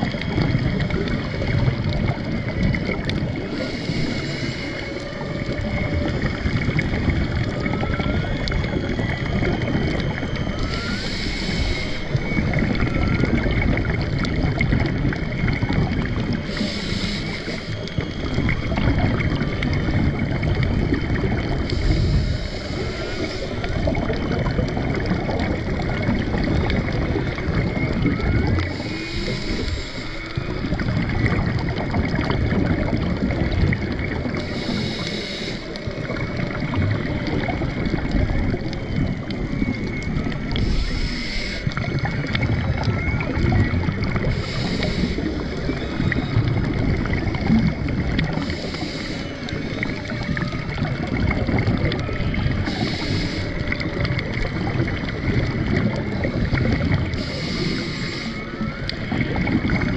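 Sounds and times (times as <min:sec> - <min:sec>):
regulator exhaling bubbles: 0:00.0 - 0:59.9
underwater water rush: 0:00.0 - 0:59.9
whale song: 0:00.0 - 0:59.9.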